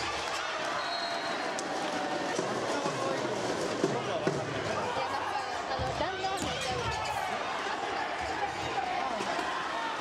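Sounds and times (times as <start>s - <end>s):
people shouting and cheering: 0.0s - 10.0s.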